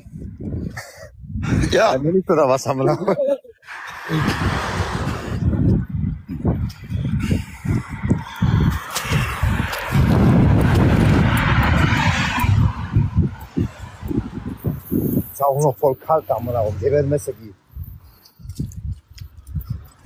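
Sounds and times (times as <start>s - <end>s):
wind buffeting microphone: 0.0s - 2.6s, 3.7s - 20.0s.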